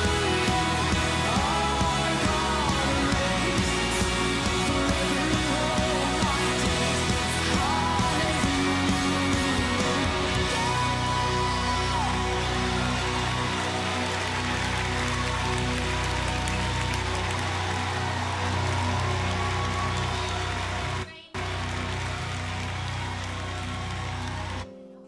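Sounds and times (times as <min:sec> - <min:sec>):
keyboard: 0:00.0 - 0:25.0.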